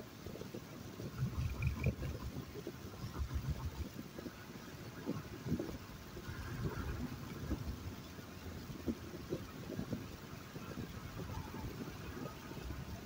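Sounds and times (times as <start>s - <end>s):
car driving on road: 0.0s - 13.0s.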